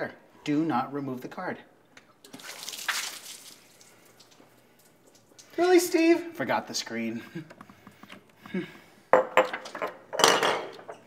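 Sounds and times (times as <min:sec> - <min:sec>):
water dripping: 0:01.8 - 0:06.1
water splashing on a person: 0:02.3 - 0:05.6.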